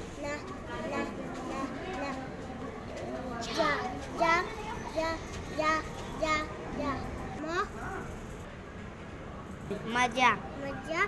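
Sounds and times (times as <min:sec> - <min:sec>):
child reading aloud: 0:00.0 - 0:02.4, 0:03.3 - 0:07.9, 0:09.9 - 0:11.0.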